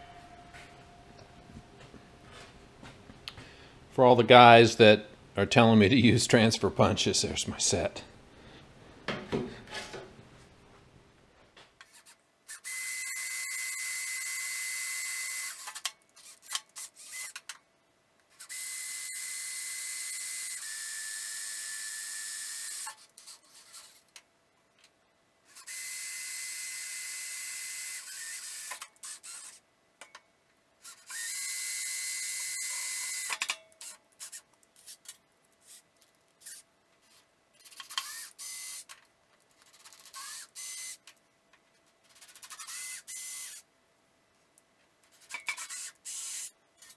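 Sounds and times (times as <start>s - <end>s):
cordless drill drilling into steel: 12.0s - 17.4s, 18.4s - 23.9s, 25.6s - 29.6s, 30.9s - 33.3s, 38.0s - 38.9s, 40.1s - 41.0s, 42.5s - 43.6s, 45.5s - 46.5s.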